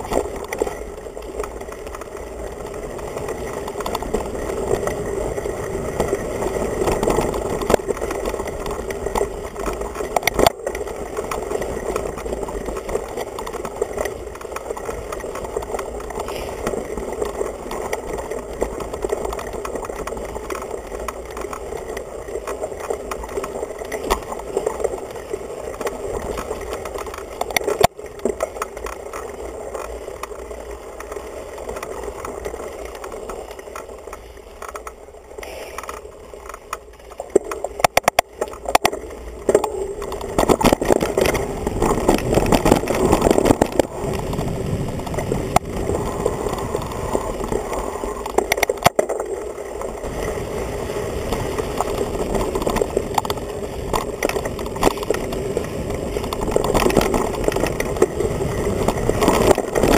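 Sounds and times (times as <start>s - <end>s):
bike rattling on dirt trail: 0.0s - 59.9s.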